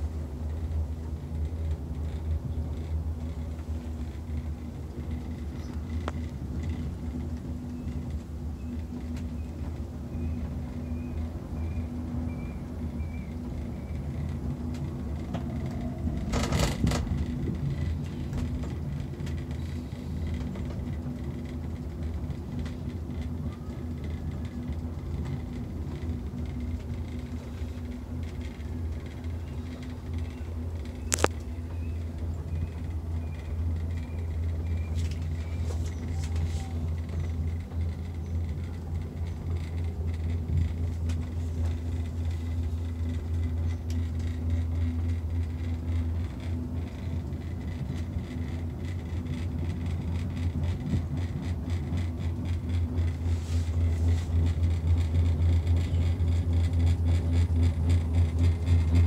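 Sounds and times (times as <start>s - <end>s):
cable car rumble and hum: 0.0s - 59.0s.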